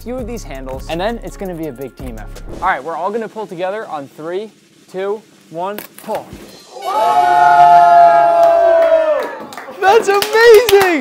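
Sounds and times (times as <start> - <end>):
person whooping: 6.7 - 9.6.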